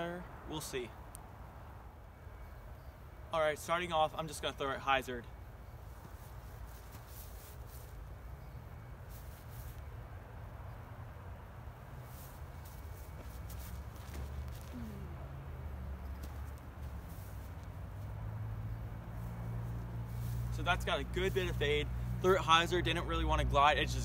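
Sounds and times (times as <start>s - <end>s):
distant road traffic rumble: 0.0s - 24.0s.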